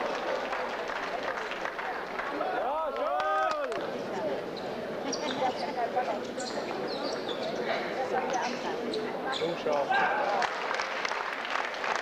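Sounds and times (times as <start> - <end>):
spectators' voices: 0.0 - 12.0.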